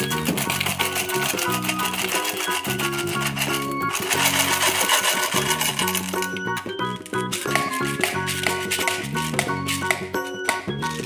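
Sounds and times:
candies pouring from plastic bottle: 0:00.0 - 0:09.9
background music: 0:00.0 - 0:11.0.

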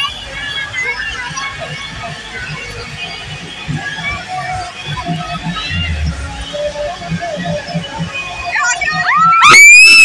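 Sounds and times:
crowd noise: 0:00.0 - 0:10.0
loud dj music with thumping bass: 0:04.9 - 0:09.4.

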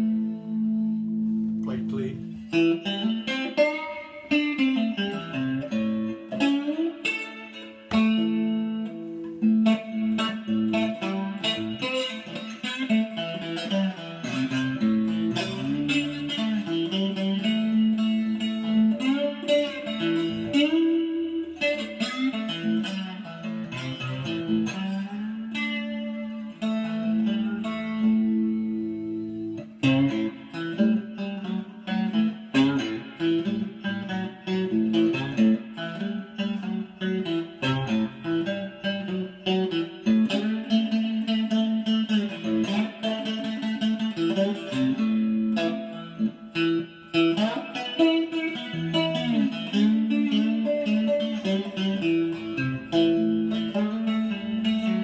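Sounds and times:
slide guitar through amplifier: 0:00.0 - 0:55.0.

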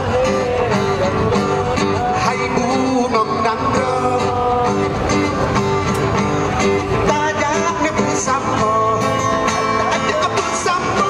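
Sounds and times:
live band playing: 0:00.0 - 0:11.0
plucked guitar: 0:00.0 - 0:11.0.

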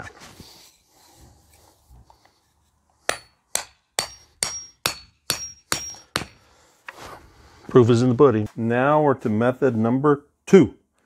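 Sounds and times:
hammer striking wooden stake: 0:03.0 - 0:06.5.

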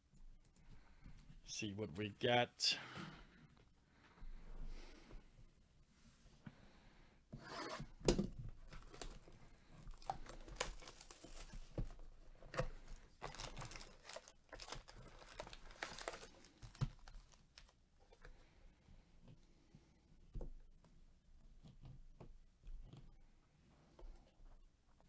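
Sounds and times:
plastic shrink wrap crinkling: 0:08.6 - 0:12.0, 0:12.8 - 0:17.8.

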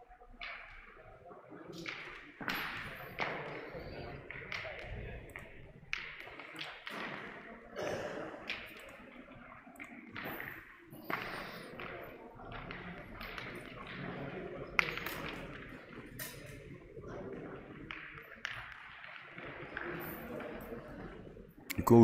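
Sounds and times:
murmur of voices: 0:00.0 - 0:22.0.

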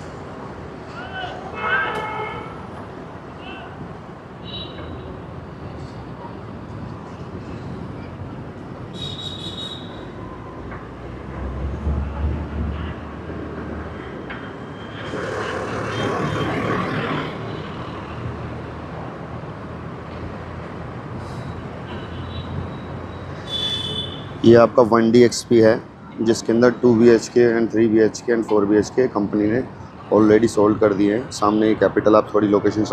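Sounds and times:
rumble of passing vehicles: 0:00.0 - 0:32.9
louder vehicle passing: 0:09.7 - 0:21.8.

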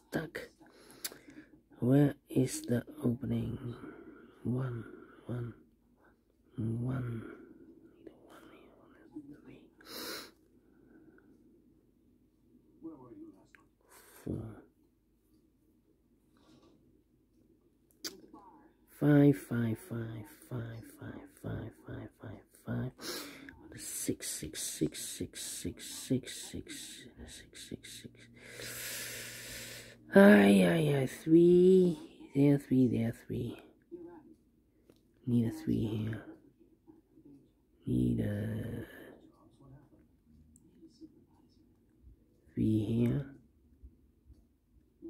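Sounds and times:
man whispering: 0:00.0 - 0:10.4, 0:12.8 - 0:14.8, 0:18.1 - 0:34.4, 0:35.1 - 0:41.8, 0:42.4 - 0:43.4
breathy hiss: 0:09.8 - 0:10.4, 0:28.3 - 0:30.1.

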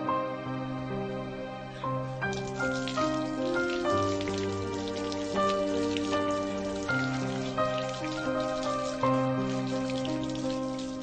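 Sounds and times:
slow instrumental music: 0:00.0 - 0:11.0.

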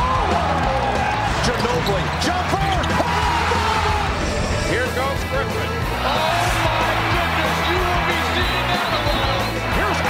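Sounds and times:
crowd noise: 0:00.0 - 0:10.0
rock music with bass: 0:02.8 - 0:10.0.

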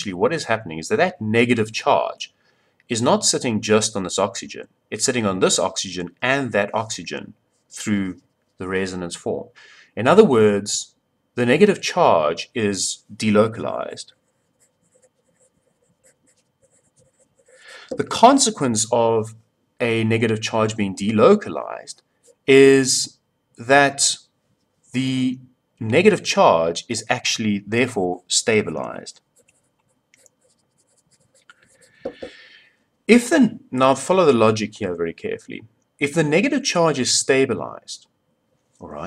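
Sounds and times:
short breath: 0:09.6 - 0:10.0, 0:17.5 - 0:18.0, 0:31.8 - 0:32.9
pencil scratching on paper: 0:14.1 - 0:17.9, 0:29.3 - 0:32.1.

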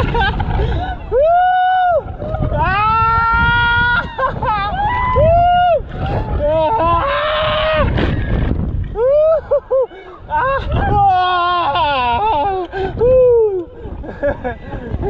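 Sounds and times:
riders whooping and screaming: 0:00.0 - 0:15.0
wind rushing on microphone: 0:00.0 - 0:15.0.

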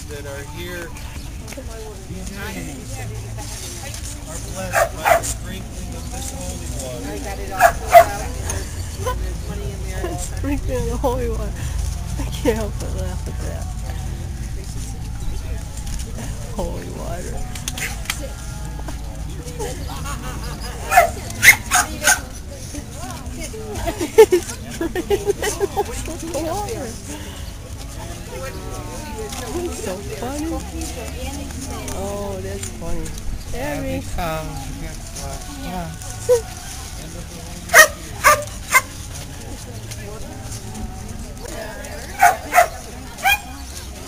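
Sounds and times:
dog barking: 0:04.7 - 0:05.4, 0:07.6 - 0:08.2, 0:20.9 - 0:22.2, 0:37.7 - 0:38.9, 0:42.2 - 0:43.5.

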